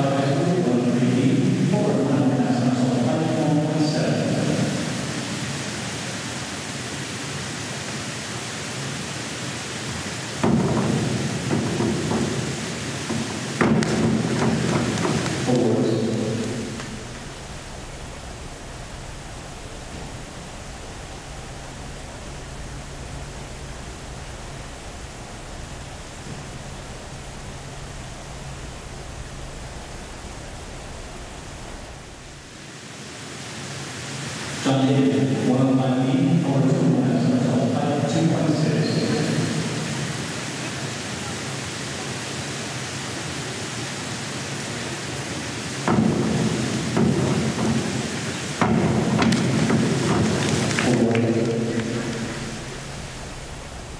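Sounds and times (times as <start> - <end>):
echoing voices: 0.0 - 6.2, 11.0 - 22.5, 34.6 - 42.2, 46.2 - 53.9
low hum: 10.6 - 32.6, 48.7 - 53.9.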